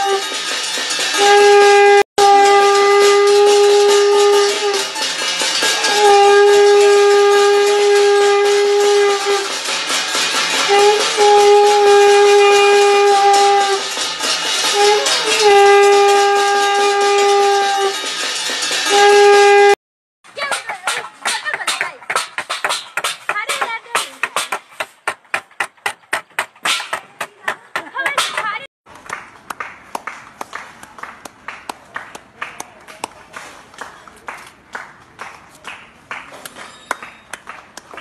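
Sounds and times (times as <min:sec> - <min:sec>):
steady horn-like tone: 0:01.1 - 0:05.0, 0:05.8 - 0:09.7, 0:10.6 - 0:18.2, 0:18.8 - 0:19.8
spoon beating metal plate: 0:20.3 - 0:28.7
hands clapping: 0:20.6 - 0:38.0.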